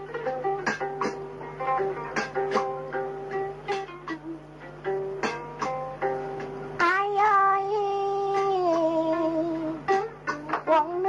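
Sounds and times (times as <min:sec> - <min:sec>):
plucked lute note: 0:00.0 - 0:11.0.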